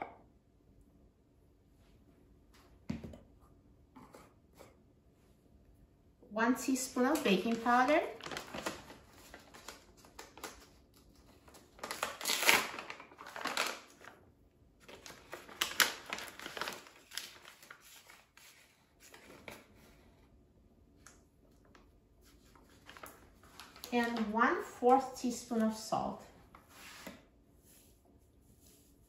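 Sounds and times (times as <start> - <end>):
paper bag crinkling: 7.0 - 14.2, 14.8 - 19.7, 22.5 - 24.4.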